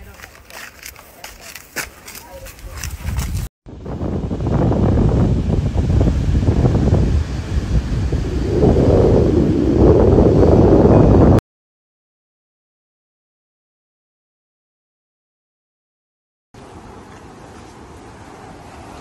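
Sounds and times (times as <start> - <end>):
faint voices: 0.0 - 3.2
wind buffeting microphone: 2.5 - 11.4.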